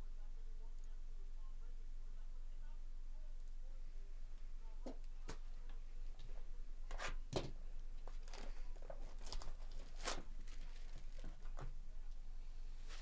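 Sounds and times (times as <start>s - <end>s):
plastic shrink wrap crinkling: 8.0s - 11.7s.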